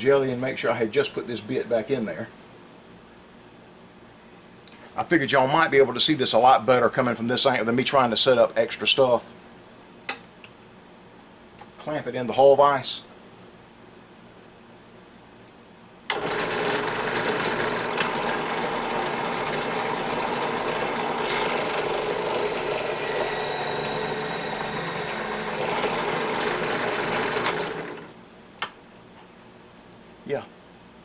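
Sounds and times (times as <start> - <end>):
drill press motor running: 16.1 - 28.2.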